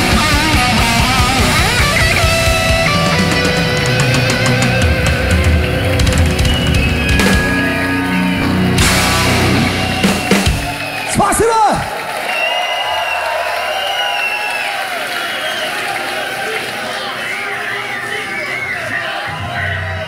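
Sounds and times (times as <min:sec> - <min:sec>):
metal band playing live: 0:00.0 - 0:11.6
crowd cheering and whistling: 0:00.0 - 0:20.0.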